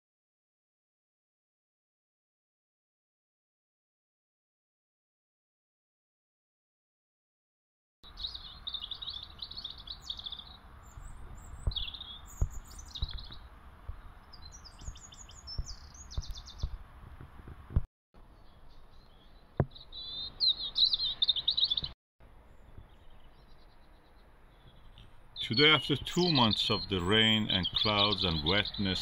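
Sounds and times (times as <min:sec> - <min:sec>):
songbirds chirping and trilling: 0:08.0 - 0:29.0
wind rumble on microphone: 0:10.8 - 0:17.9.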